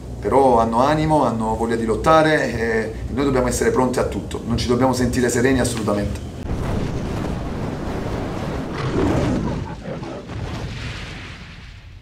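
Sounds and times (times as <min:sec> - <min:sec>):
fiery rumbling whoosh: 0:06.4 - 0:11.7.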